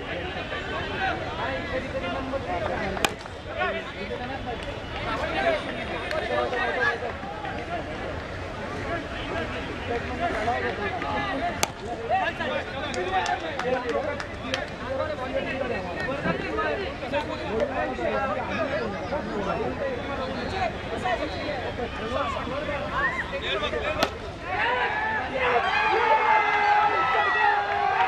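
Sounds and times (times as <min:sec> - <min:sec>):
voices and chatter: 0:00.0 - 0:28.0
bat hitting ball: 0:03.0 - 0:03.4, 0:11.6 - 0:11.8.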